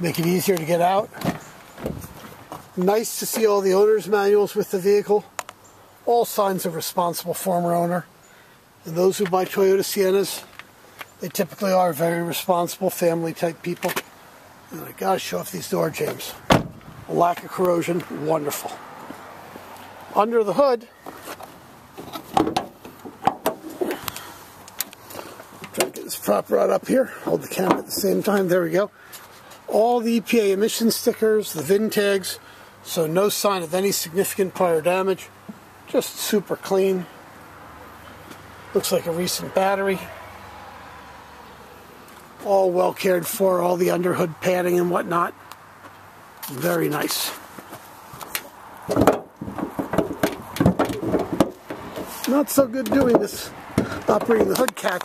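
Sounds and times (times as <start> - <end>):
car hood knocking shut: 16.5 - 16.8
hood latch clicks and knocks: 16.5 - 17.5, 22.0 - 23.6, 48.8 - 52.1, 52.8 - 55.0.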